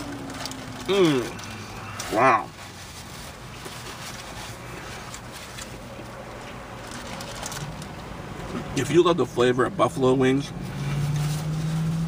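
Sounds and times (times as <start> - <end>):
faint clicks and rustles: 0.0 - 8.7.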